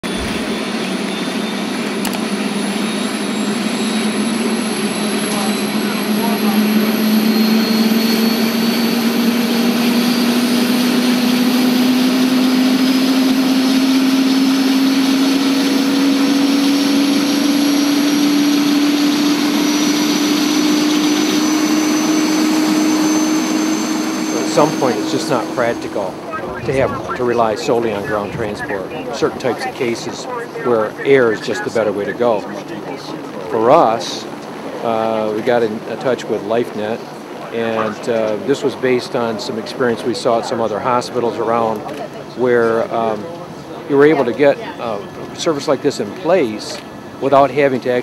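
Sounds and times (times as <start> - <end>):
helicopter turbine whine and rotor: 0.0 - 48.0.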